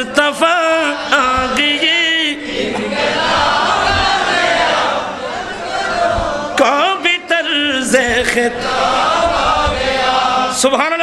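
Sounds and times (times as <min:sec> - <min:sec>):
man chanting over loudspeaker: 0:00.0 - 0:02.8, 0:06.4 - 0:11.0.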